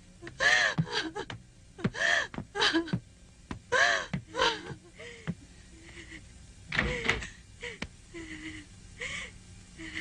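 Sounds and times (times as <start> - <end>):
woman gasping and moaning: 0.2 - 3.0, 3.7 - 10.0.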